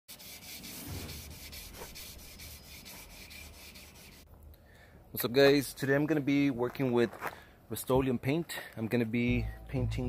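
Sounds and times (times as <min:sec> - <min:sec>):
wet sanding strokes: 0:00.1 - 0:04.3.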